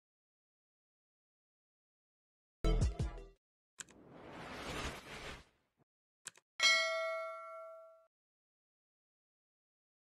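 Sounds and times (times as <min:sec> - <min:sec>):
notification bell ding: 0:06.6 - 0:08.1.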